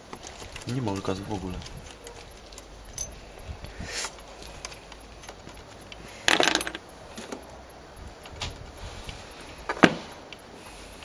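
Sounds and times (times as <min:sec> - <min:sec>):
small metal parts jingling: 0:00.0 - 0:08.4.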